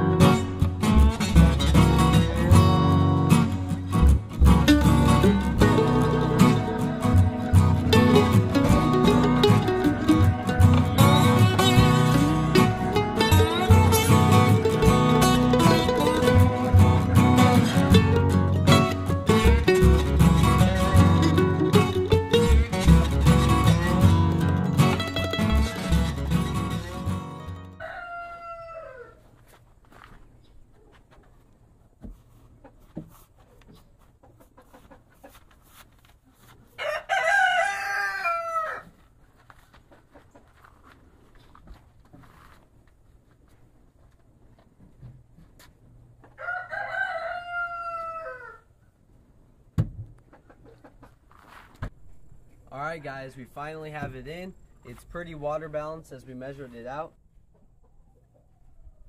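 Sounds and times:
guitar music: 0:00.0 - 0:27.8
rooster crowing: 0:27.7 - 0:29.3, 0:36.8 - 0:39.0, 0:46.3 - 0:48.8.

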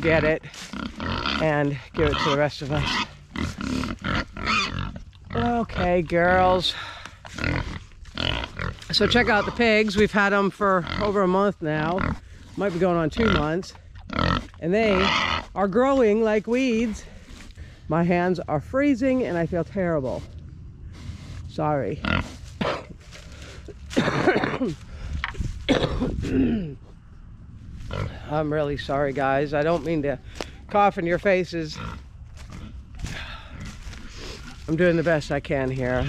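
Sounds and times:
pigs grunting: 0:00.0 - 0:17.8, 0:19.2 - 0:27.0, 0:27.8 - 0:30.8, 0:31.6 - 0:36.0
woman coughing: 0:22.6 - 0:22.9, 0:23.9 - 0:24.8, 0:25.7 - 0:26.8.

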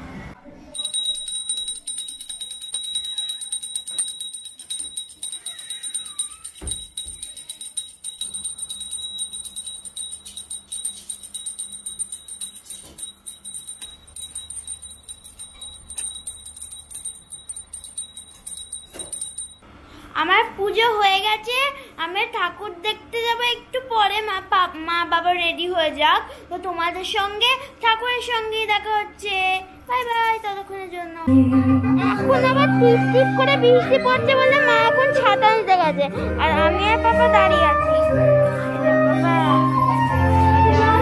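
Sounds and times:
small bell ringing rapidly: 0:00.8 - 0:19.6.

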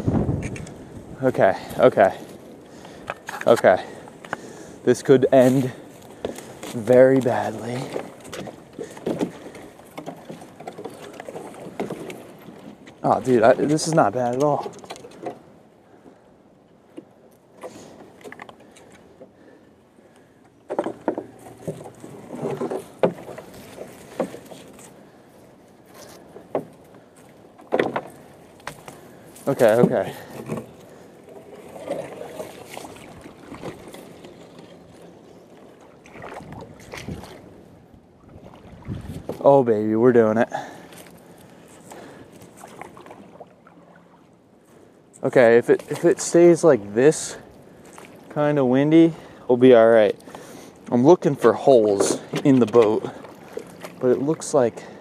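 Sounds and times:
water sloshing: 0:00.0 - 0:55.0
boat hull knocks and scrapes: 0:05.3 - 0:15.4, 0:20.6 - 0:25.0, 0:25.8 - 0:35.0, 0:38.3 - 0:39.7, 0:50.2 - 0:54.9.

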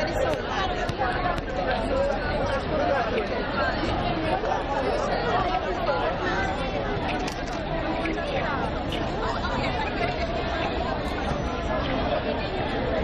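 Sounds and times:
crowd chattering: 0:00.0 - 0:13.0.

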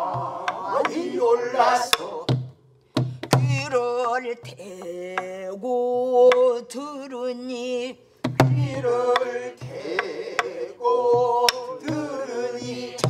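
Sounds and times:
person singing wavering vocal: 0:03.6 - 0:08.0
barrel drum strokes and thumps: 0:08.2 - 0:10.5.

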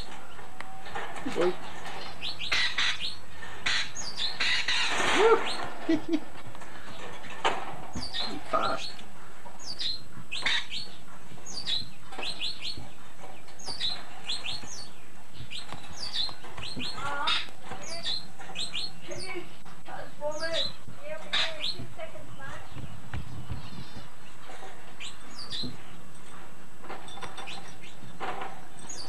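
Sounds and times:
birds chirping: 0:00.0 - 0:29.0.

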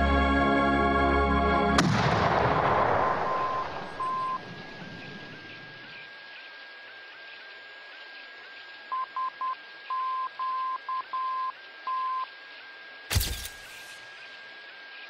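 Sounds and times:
morse code beeps: 0:03.3 - 0:04.4, 0:08.9 - 0:12.3
steady hiss: 0:12.5 - 0:15.0.

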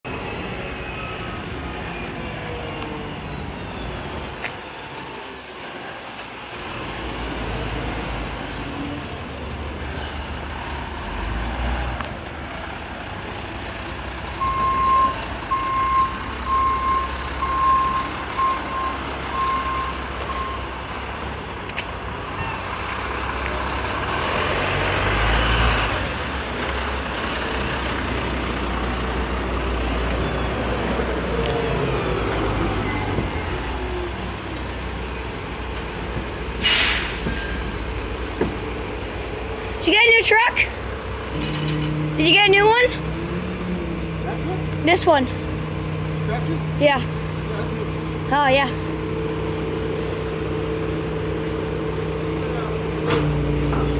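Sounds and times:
diesel truck engine running: 0:00.0 - 0:53.9
rush of truck noise: 0:00.1 - 0:53.9
reversing alarm beeping: 0:14.4 - 0:20.8.

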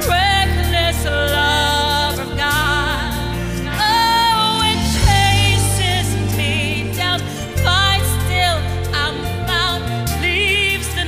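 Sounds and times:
live band with bass line: 0:00.0 - 0:11.0
woman singing into a microphone: 0:00.0 - 0:11.0.

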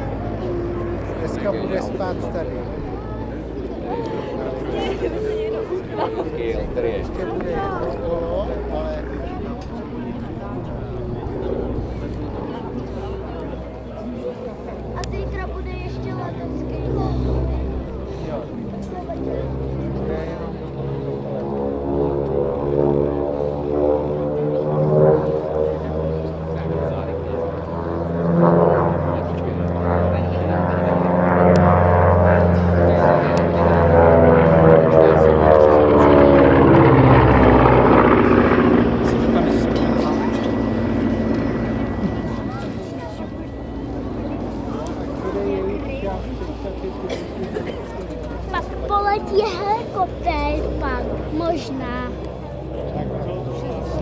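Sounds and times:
propeller plane fly-by: 0:00.0 - 0:54.0.

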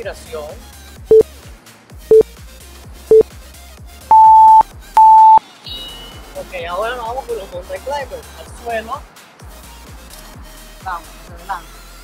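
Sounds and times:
longer higher-pitched beep: 0:04.1 - 0:05.4
short timer beeps: 0:04.1 - 0:05.4.

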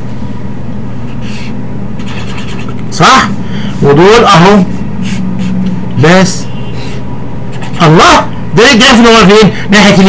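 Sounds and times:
low hum and hiss: 0:00.0 - 0:10.0
marker pen drawing on paper: 0:01.1 - 0:03.0, 0:05.0 - 0:05.7, 0:06.8 - 0:08.2.

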